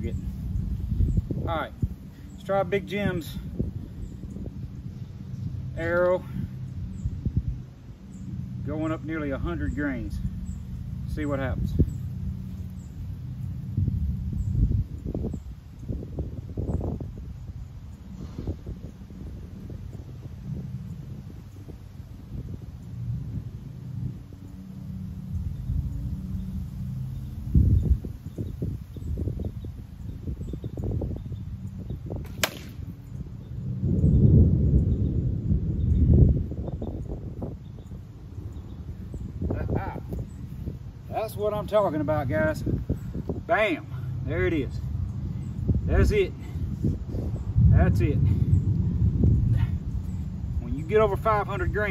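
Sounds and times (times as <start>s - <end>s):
wind rumble on microphone: 0.0s - 51.9s
arrow cracking through plywood: 32.2s - 32.8s.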